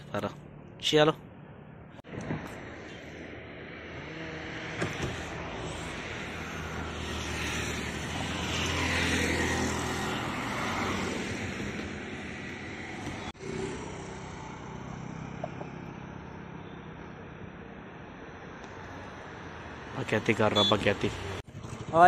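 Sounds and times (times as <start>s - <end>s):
motorbike driving by: 3.7s - 16.6s.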